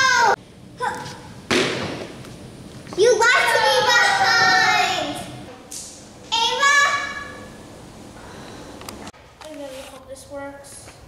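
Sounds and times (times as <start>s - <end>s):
sudden thud: 1.5s - 2.2s.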